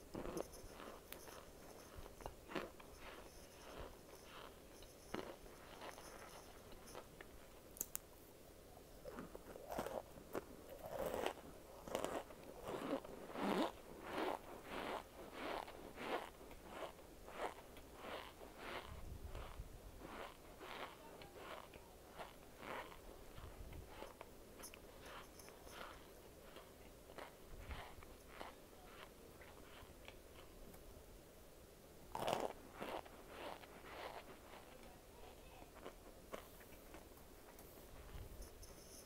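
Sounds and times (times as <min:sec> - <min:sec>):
chewing crunchy food: 0:00.1 - 0:08.0, 0:09.0 - 0:30.8, 0:32.1 - 0:34.9, 0:35.7 - 0:37.1.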